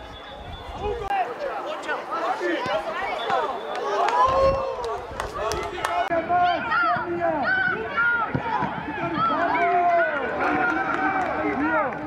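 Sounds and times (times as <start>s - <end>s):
many voices calling and shouting: 0.0s - 12.0s.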